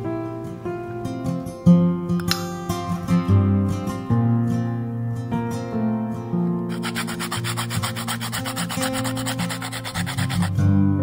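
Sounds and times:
acoustic guitar music: 0:00.0 - 0:11.0
nutmeg scraped on metal grater: 0:06.7 - 0:10.5.

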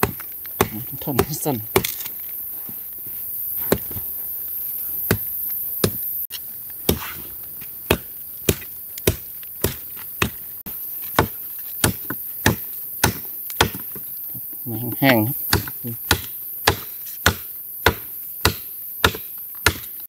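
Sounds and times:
machete chopping dry wood: 0:00.0 - 0:02.1, 0:03.7 - 0:04.0, 0:05.0 - 0:06.1, 0:06.9 - 0:07.2, 0:07.8 - 0:10.4, 0:11.1 - 0:14.0, 0:15.1 - 0:20.0.

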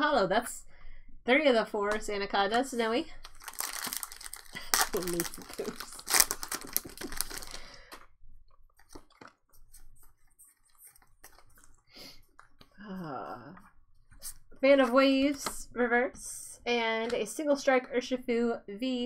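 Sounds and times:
foil wrapper crinkling and tearing: 0:03.2 - 0:07.9.

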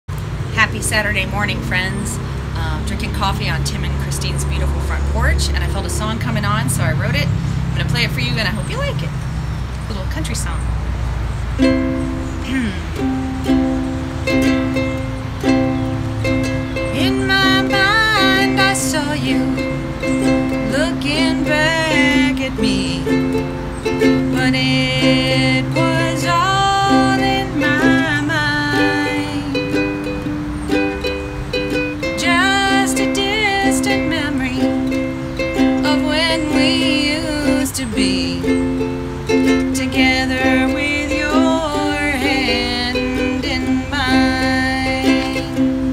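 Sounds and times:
ukulele strumming chords: 0:00.2 - 0:08.9, 0:11.6 - 0:45.9
woman singing: 0:00.6 - 0:08.9, 0:16.8 - 0:30.1, 0:32.0 - 0:45.9.

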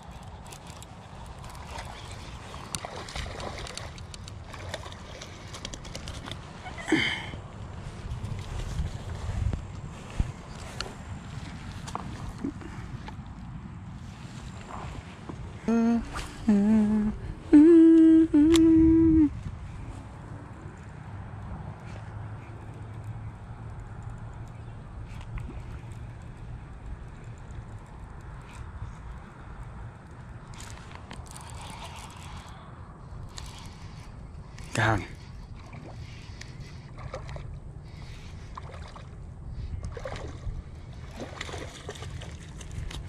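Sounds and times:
steady low rumble: 0:06.4 - 0:43.0
man humming notes: 0:15.6 - 0:19.4.

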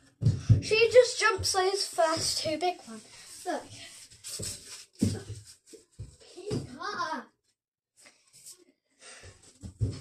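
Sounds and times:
child's thudding footfalls: 0:00.2 - 0:02.6, 0:04.3 - 0:07.1, 0:09.6 - 0:10.0
child's wordless voice: 0:00.2 - 0:04.0, 0:06.2 - 0:07.4.

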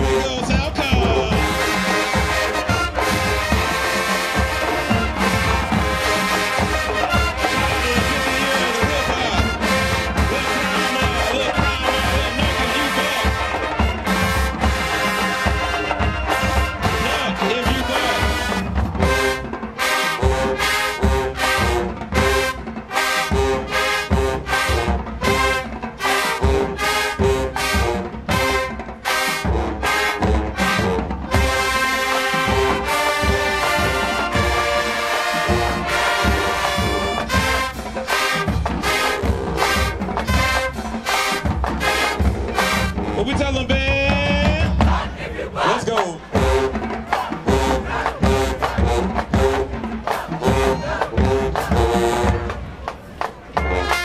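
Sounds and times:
brass section playing: 0:00.0 - 0:54.0
drumline: 0:00.0 - 0:54.0.

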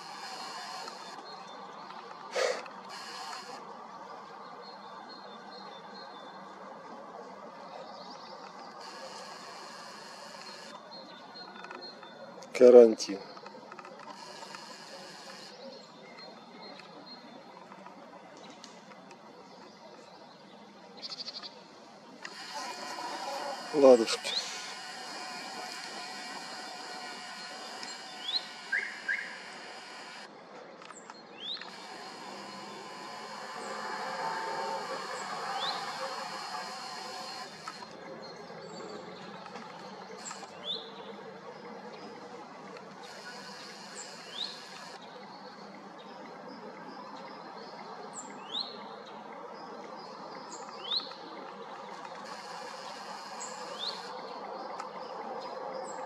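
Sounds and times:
outdoor background hum: 0:00.0 - 0:47.6, 0:48.2 - 0:56.0
small bird chirping: 0:22.2 - 0:30.3, 0:31.4 - 0:37.9.

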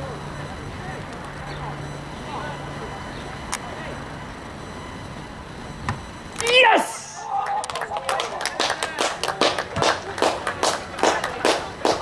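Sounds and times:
person clapping: 0:07.4 - 0:12.0.

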